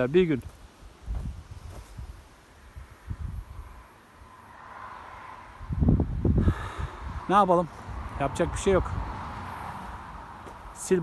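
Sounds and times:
wind buffeting microphone: 0.0s - 3.9s, 5.4s - 10.8s.

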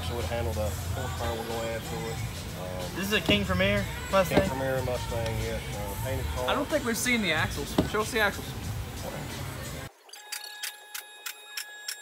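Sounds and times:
faint high ringing tone: 10.0s - 12.0s.

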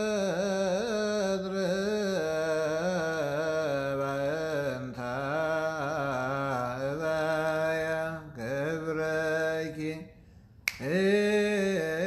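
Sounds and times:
man chanting: 0.0s - 12.0s
sharp click: 10.6s - 10.9s.

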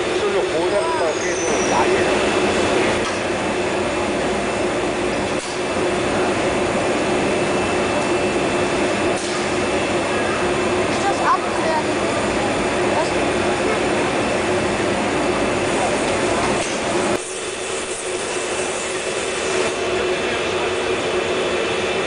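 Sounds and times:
furnaces and blowers humming: 0.0s - 22.0s
faint voices: 9.8s - 17.1s, 18.5s - 22.0s.

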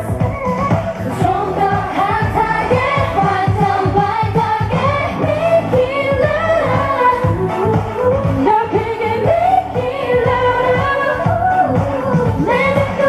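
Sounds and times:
driving drum beat: 0.0s - 13.0s
upbeat pop dance song: 0.0s - 13.0s
woman singing: 1.1s - 13.0s.

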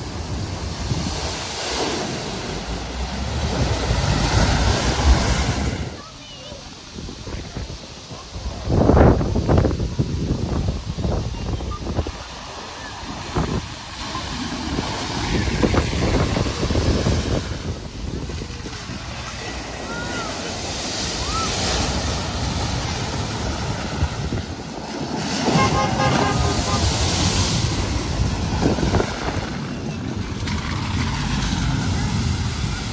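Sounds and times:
wind on microphone: 0.0s - 6.1s, 6.7s - 32.9s
cars splashing through water: 0.0s - 32.9s.

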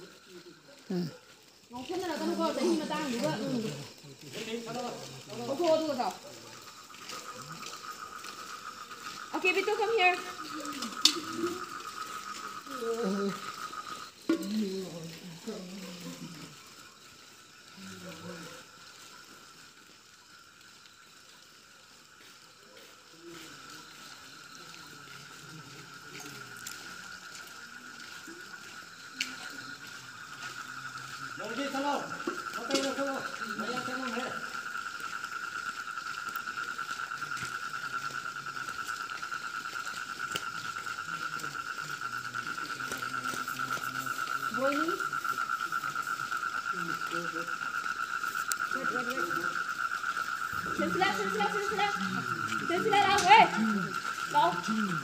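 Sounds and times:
faint voices: 0.0s - 19.3s, 21.4s - 55.0s
crickets trilling: 0.0s - 55.0s.

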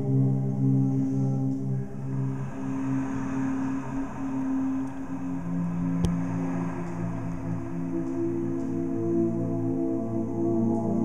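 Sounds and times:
layered vocal drones: 0.0s - 11.0s.

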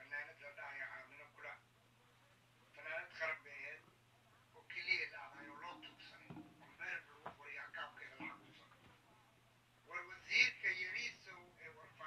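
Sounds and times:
faint speech: 0.0s - 12.0s.

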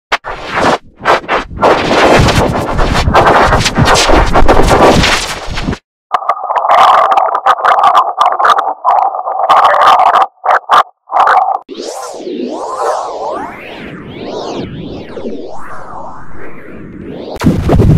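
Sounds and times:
harsh stuttering noise: 0.1s - 17.9s.

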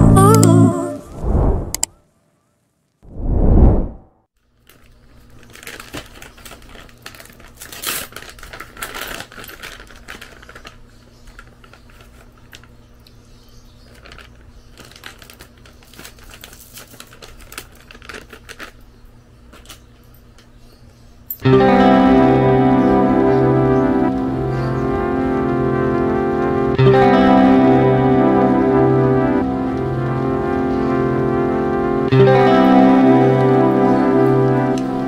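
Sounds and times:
loud music: 0.0s - 1.0s, 21.4s - 35.0s
plastic snack pouch crinkling: 4.5s - 12.8s, 13.8s - 18.9s.

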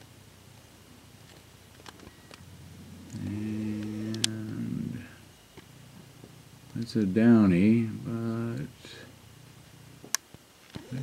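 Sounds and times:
man humming: 2.6s - 5.3s, 7.7s - 9.1s.

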